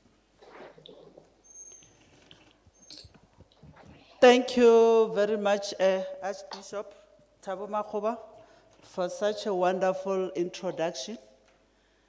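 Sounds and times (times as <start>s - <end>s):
faint high squeak: 1.4s - 3.2s
microphone handling taps and rustles: 1.9s - 4.0s.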